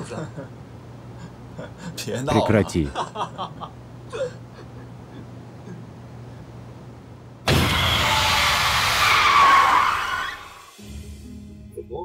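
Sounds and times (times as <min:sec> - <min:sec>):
tyres screeching and skidding: 0:07.5 - 0:10.8.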